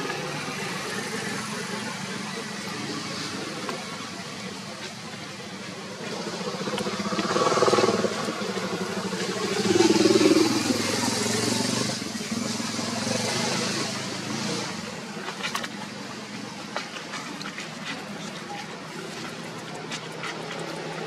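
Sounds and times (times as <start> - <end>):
vehicle engine passing: 0.0 - 16.6.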